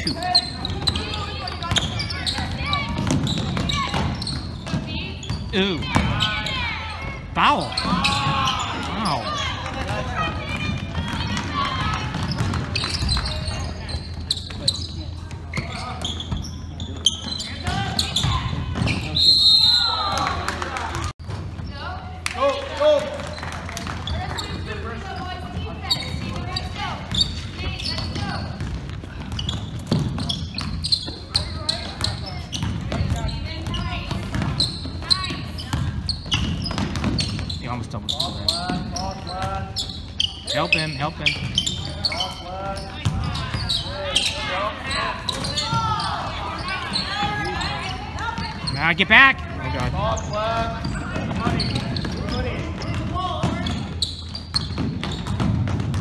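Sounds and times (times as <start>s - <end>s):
basketball bouncing on hardwood floor: 27.6s - 31.2s, 35.7s - 37.5s, 54.5s - 56.0s.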